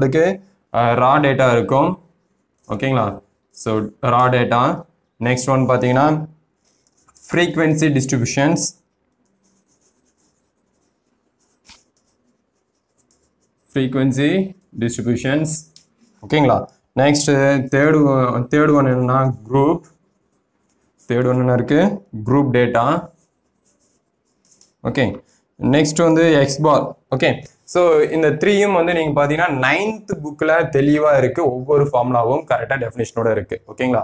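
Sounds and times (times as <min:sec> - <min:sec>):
chalk scratching on blackboard: 0:06.6 - 0:16.9, 0:18.5 - 0:22.1, 0:22.7 - 0:25.4.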